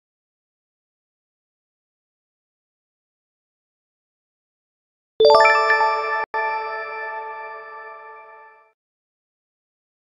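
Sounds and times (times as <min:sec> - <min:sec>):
bright bell-like chime: 0:05.2 - 0:08.1.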